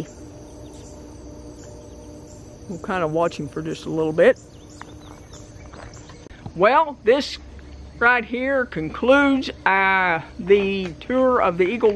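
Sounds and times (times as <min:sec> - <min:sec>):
insects calling: 0:00.0 - 0:11.9.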